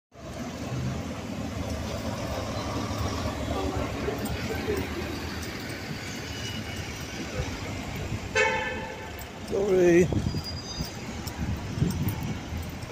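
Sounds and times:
street traffic noise: 0.1s - 12.9s
bus engine passing: 0.2s - 12.9s.

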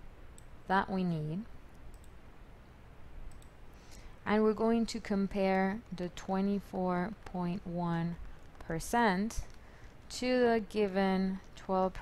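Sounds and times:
computer mouse clicks: 1.7s - 2.2s, 3.2s - 3.6s, 7.1s - 10.1s.

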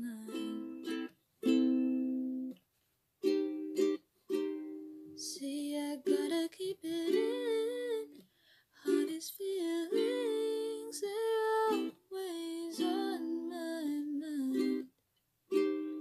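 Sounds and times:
ukulele strumming chords: 0.0s - 2.6s, 3.2s - 5.4s, 6.0s - 8.1s, 8.9s - 12.0s, 12.6s - 14.9s, 15.5s - 16.0s.

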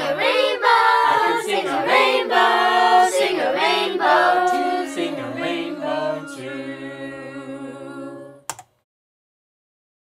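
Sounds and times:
voices singing in harmony: 0.0s - 8.5s.

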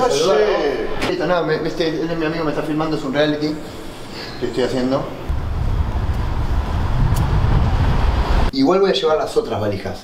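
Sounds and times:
street noise low rumble: 5.2s - 8.5s.

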